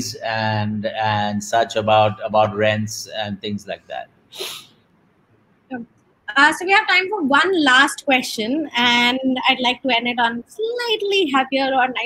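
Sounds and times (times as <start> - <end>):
sharp burst of breath: 4.3 - 4.8.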